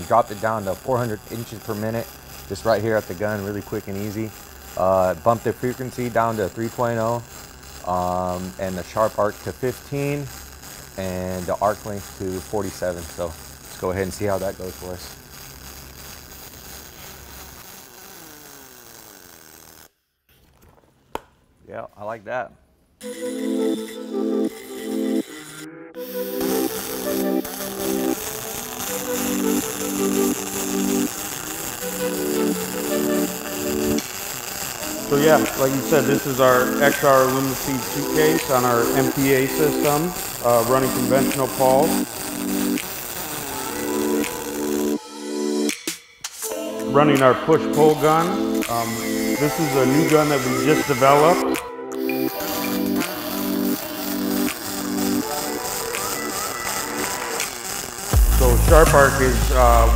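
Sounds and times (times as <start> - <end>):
welding arc buzzing hiss: 0.0 - 20.6, 23.0 - 59.9
music with held notes: 26.0 - 28.2, 43.9 - 57.0.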